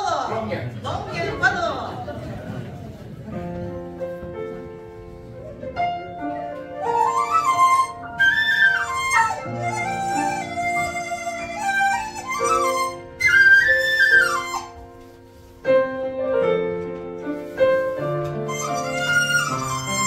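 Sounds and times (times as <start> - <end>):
piano chords: 0.9 - 20.0
bamboo flute sliding melody: 5.2 - 15.9, 17.5 - 20.0.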